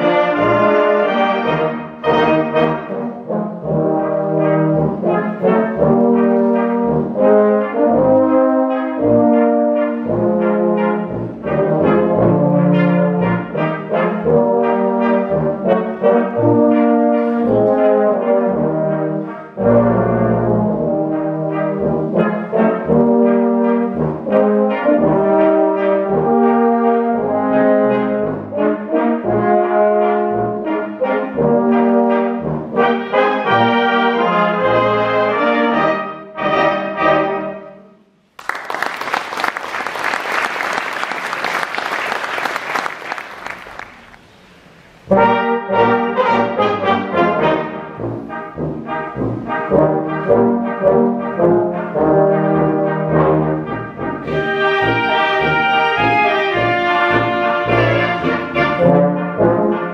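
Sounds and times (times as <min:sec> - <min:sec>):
brass band playing: 0:00.0 - 0:38.0, 0:39.4 - 0:59.9.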